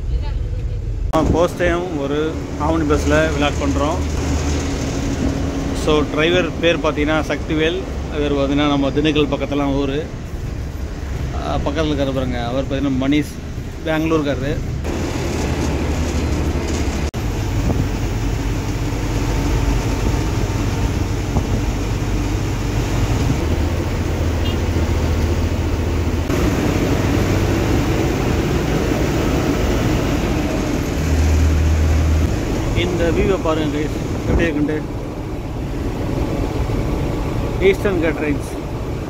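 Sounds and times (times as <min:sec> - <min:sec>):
bus engine drone: 0:00.0 - 0:39.0
road noise: 0:00.0 - 0:39.0.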